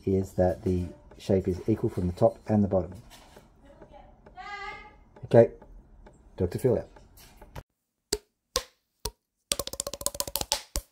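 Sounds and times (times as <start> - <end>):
wood block knocks: 0.0 - 8.7
fast run of clicks: 9.5 - 10.9.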